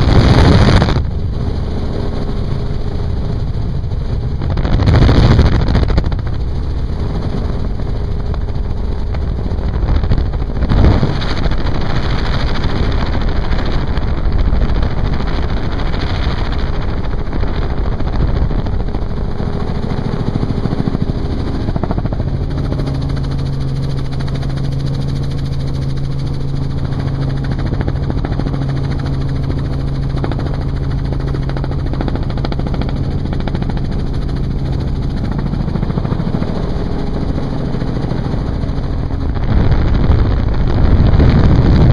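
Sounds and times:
helicopter rotor and engine: 0.0 - 41.9
steady low hum: 0.0 - 41.9
wind rushing through cabin: 0.0 - 41.9.

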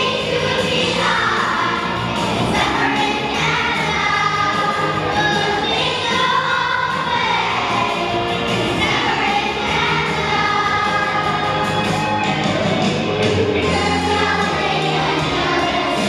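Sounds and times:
children's choir singing: 0.0 - 16.0
low musical accompaniment: 0.0 - 16.0.

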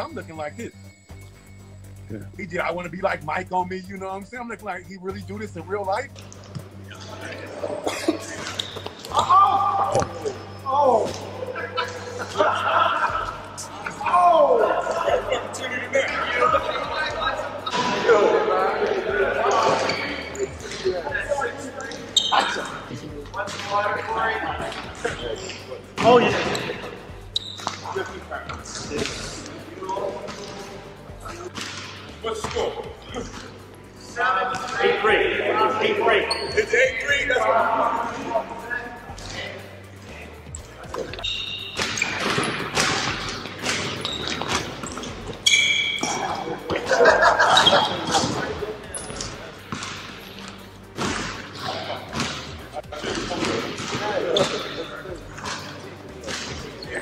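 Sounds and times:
indistinct voices: 0.0 - 57.0.

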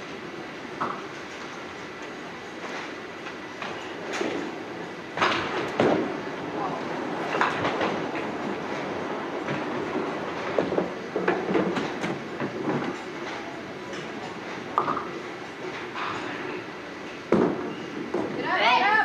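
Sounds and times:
bowling balls rolling on lanes: 3.6 - 18.6
pins and machinery clattering: 6.9 - 18.4.

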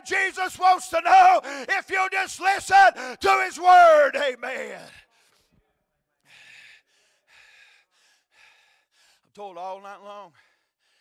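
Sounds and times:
breath into a microphone: 1.4 - 1.7, 3.0 - 3.2, 4.9 - 9.3, 10.3 - 11.0.

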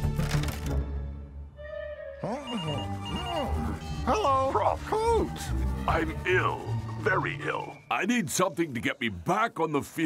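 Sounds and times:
cartoon background music: 0.0 - 10.0
mobile phone ringing: 2.4 - 3.8.

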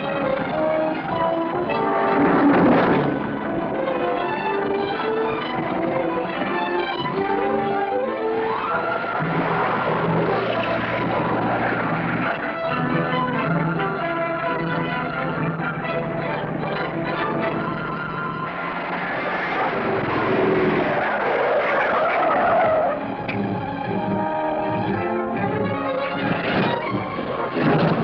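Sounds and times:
orchestral film score: 0.0 - 28.0
car tyres screeching: 0.4 - 28.0.

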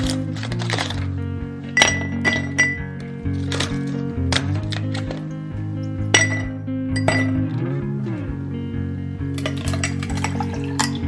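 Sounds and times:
ice cubes clinking in glass: 0.0 - 1.1, 1.8 - 5.2, 6.1 - 7.4, 9.4 - 11.0
background music: 0.0 - 11.0.

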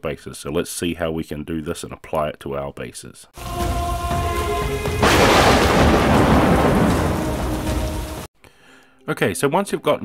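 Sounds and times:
loud thunderclap: 4.9 - 8.3
rain: 5.0 - 8.3.

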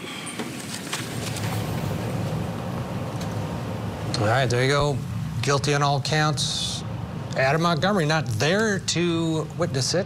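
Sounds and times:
crowd shuffling and rising: 0.0 - 4.0.

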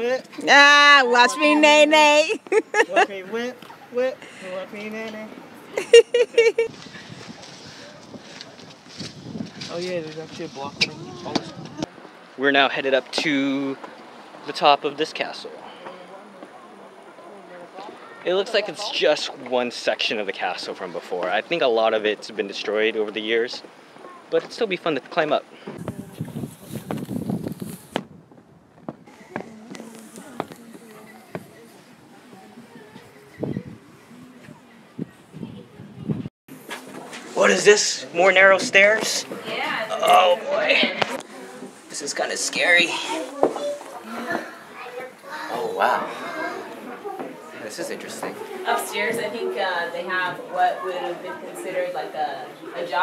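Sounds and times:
rustling: 6.7 - 11.9, 25.7 - 33.4
wind buffeting microphone: 6.7 - 12.0, 25.8 - 29.8, 32.5 - 36.3.

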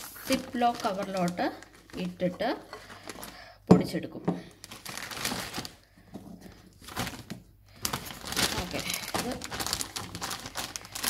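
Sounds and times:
plastic bag crinkling: 0.0 - 3.5, 4.5 - 11.0.

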